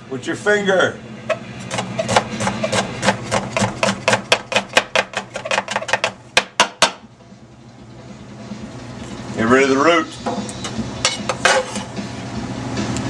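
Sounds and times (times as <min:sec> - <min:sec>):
knife chopping on cutting board: 0:01.6 - 0:07.0.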